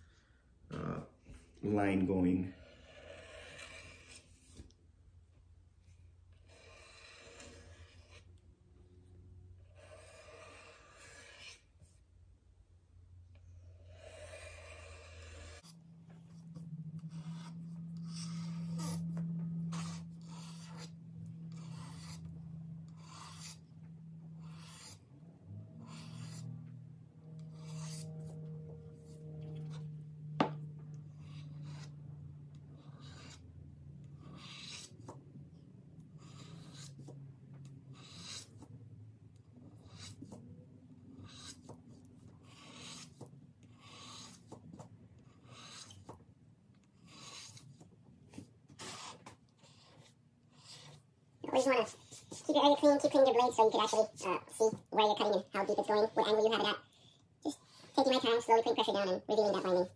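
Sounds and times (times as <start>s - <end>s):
faint low hum: 0.0s - 59.9s.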